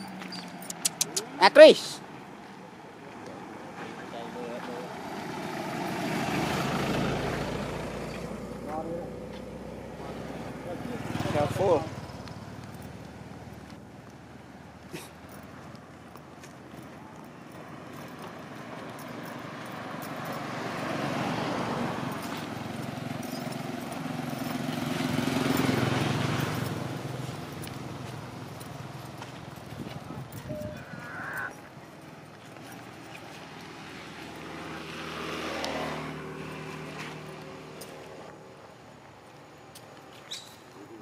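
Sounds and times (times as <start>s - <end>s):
vehicles passing by: 0.0s - 41.0s.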